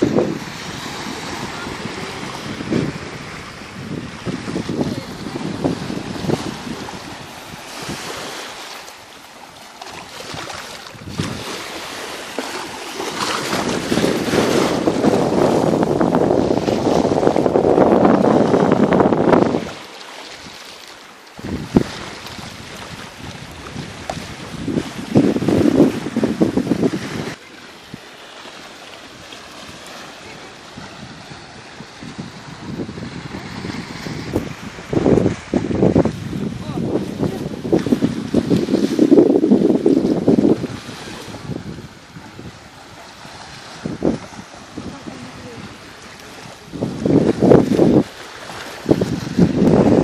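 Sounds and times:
wind buffeting the microphone: 0.0s - 8.6s, 9.9s - 20.6s, 21.4s - 50.0s
small waves washing onto shore: 0.0s - 50.0s.

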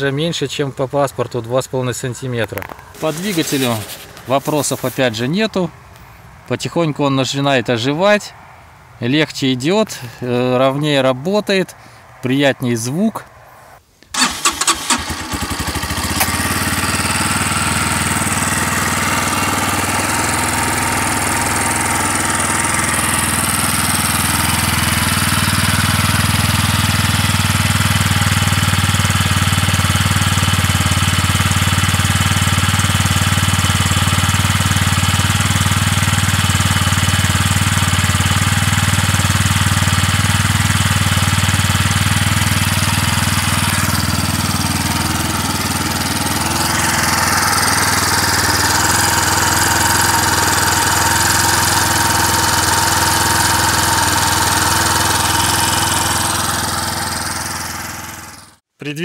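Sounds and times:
motorcycle engine idling: 14.2s - 58.6s.

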